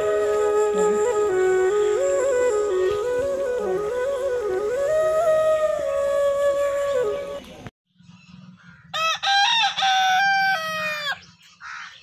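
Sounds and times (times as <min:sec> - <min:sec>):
rooster crowing: 0:08.9 - 0:11.2.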